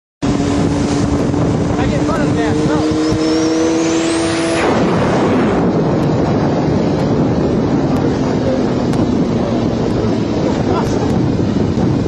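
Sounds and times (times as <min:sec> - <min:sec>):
vehicle engine droning: 0:00.2 - 0:12.0
wind buffeting microphone: 0:00.2 - 0:12.0.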